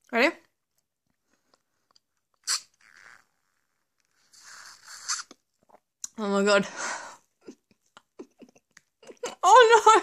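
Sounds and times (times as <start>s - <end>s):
slurping tea through biscuit: 2.4s - 5.9s.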